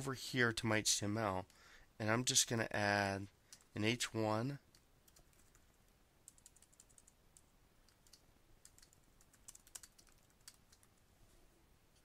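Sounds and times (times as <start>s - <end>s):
computer keyboard typing: 4.7s - 11.0s.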